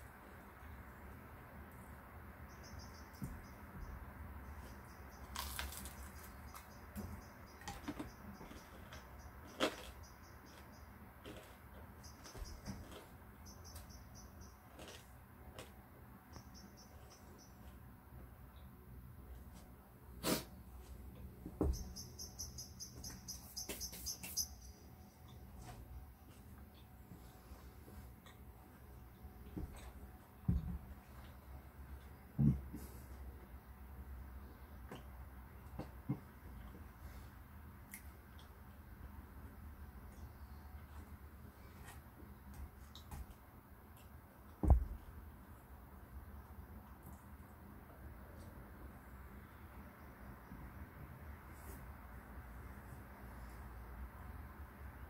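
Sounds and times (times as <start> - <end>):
chewing fried chicken: 5.2 - 6.7, 7.7 - 13.8, 14.6 - 15.9
small animal chirping: 21.7 - 24.8.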